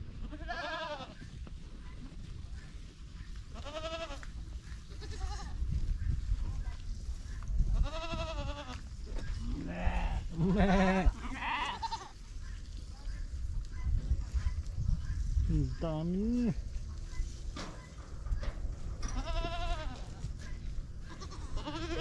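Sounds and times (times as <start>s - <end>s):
goats bleating: 0.2s - 1.2s, 3.5s - 4.3s, 4.9s - 5.6s, 7.8s - 8.8s, 9.4s - 12.2s, 19.1s - 20.3s, 21.0s - 22.0s.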